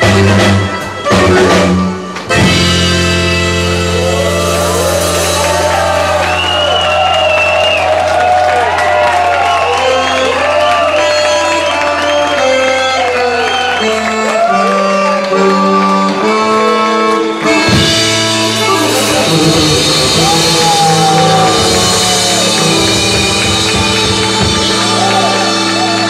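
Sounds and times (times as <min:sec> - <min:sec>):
button accordion chord: 0:00.0 - 0:06.5, 0:09.8 - 0:26.0
live band playing: 0:00.0 - 0:26.0
crowd shouting and whooping: 0:03.8 - 0:15.4, 0:18.8 - 0:26.0.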